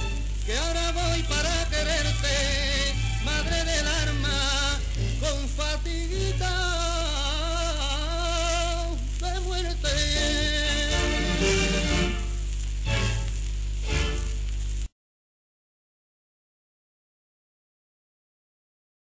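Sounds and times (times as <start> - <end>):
low hum: 0.0 - 14.9
old record song: 0.0 - 14.9
record surface hiss and crackle: 0.0 - 15.0.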